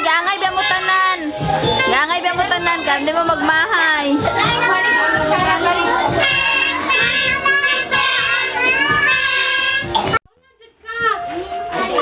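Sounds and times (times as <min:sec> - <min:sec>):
children chattering: 0:00.0 - 0:12.0
music with children singing: 0:00.0 - 0:12.0.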